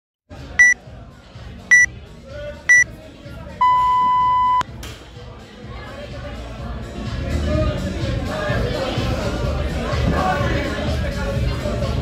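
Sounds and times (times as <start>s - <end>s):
long lower timer beep: 3.6s - 4.6s
short high timer beeps: 3.6s - 4.6s.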